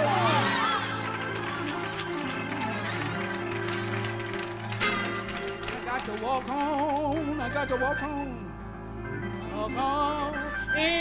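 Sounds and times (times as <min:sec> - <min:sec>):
gospel band held chords: 0:00.0 - 0:11.0.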